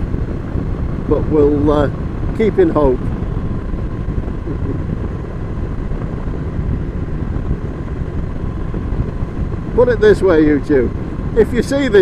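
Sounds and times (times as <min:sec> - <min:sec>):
motorcycle engine running: 0:00.0 - 0:12.0
wind and road noise: 0:00.0 - 0:12.0.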